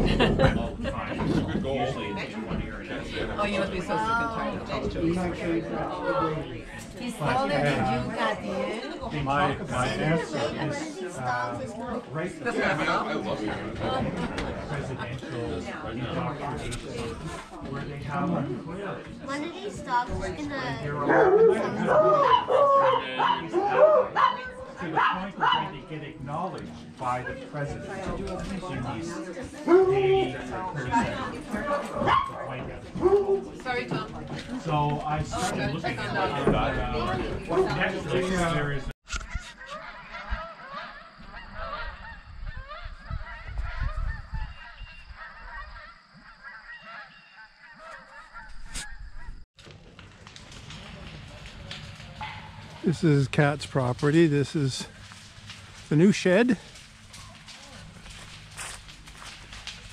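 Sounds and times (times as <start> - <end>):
geese honking: 39.3 - 49.4.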